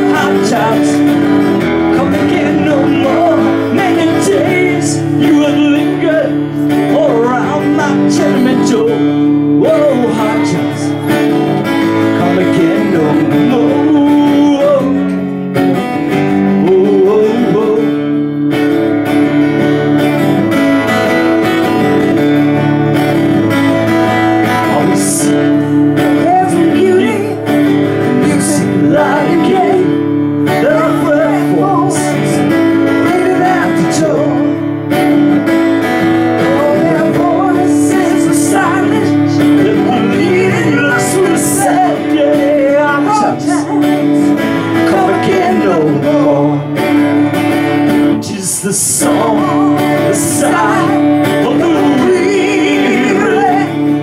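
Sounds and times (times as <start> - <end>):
person singing: 0.0 - 15.4, 16.1 - 18.4, 23.4 - 54.0
acoustic guitar strumming: 0.0 - 54.0.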